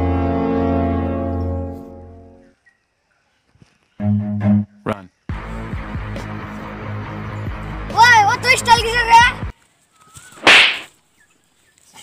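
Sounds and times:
music: 0.0 - 2.5, 4.0 - 9.5
whip-crack swish: 10.4 - 11.0.

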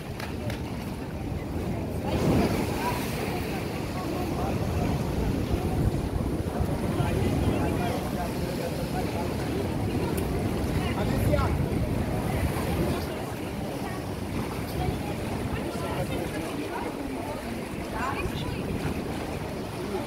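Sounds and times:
people chattering: 0.0 - 20.0
wind buffeting microphone: 0.0 - 20.0.

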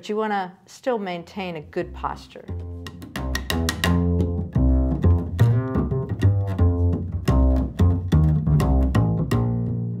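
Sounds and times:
plucked upright bass: 1.8 - 10.0.

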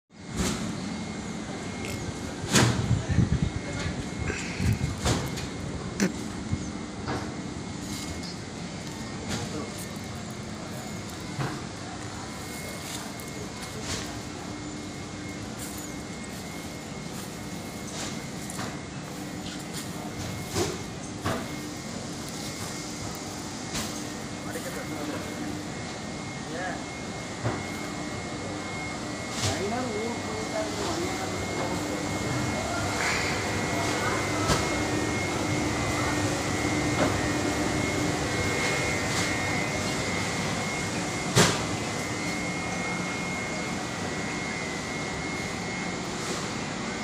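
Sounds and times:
steady hum: 0.1 - 47.0
background voices talking: 1.4 - 6.6, 7.8 - 23.2.

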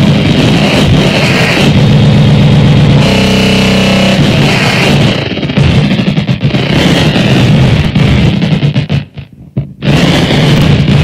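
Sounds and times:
buzzing pitched tone: 0.0 - 9.2, 9.8 - 11.0
distorted electronic noise: 0.0 - 11.0.

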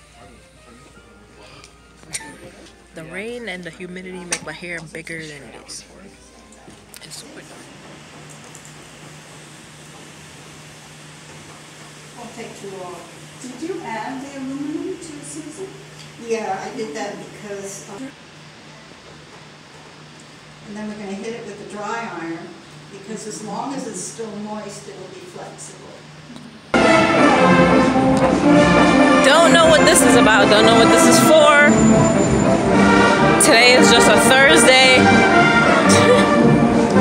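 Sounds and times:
low even hum: 20.2 - 37.0
marching band music: 26.8 - 37.0.

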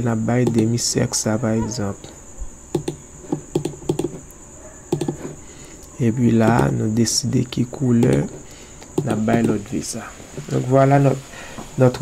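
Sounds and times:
faint high-pitched whine: 0.0 - 12.0
computer mouse clicking: 0.4 - 0.7, 2.7 - 6.7, 8.0 - 9.6.

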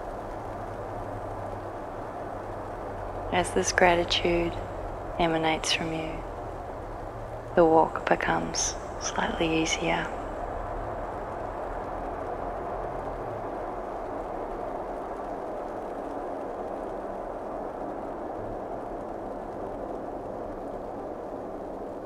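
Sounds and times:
steady rushing nature ambience: 0.0 - 22.0.

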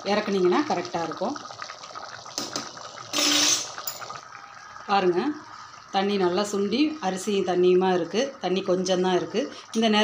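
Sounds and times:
water boiling in a pot: 0.0 - 10.0.

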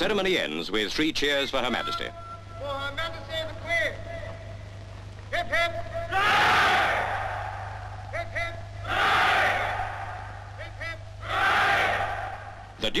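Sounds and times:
crowd of men shouting hurrah: 6.0 - 12.8.

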